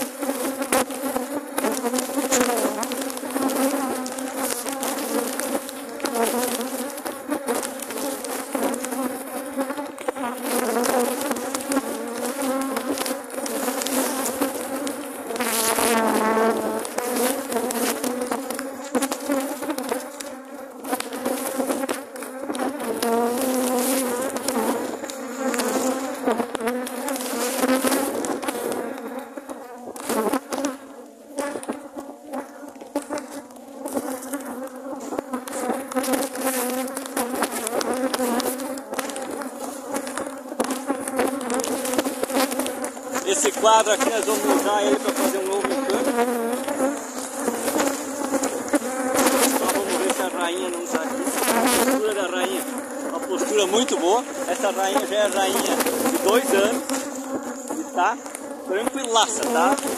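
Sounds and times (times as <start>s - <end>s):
bee flying past microphone: 0.0s - 59.9s
honeybees buzzing: 0.0s - 59.9s.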